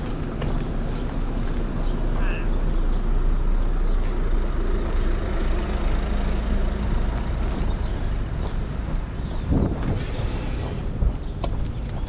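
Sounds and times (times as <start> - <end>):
low rumble of vehicle traffic: 0.0 - 12.0
people's voices: 2.1 - 2.6.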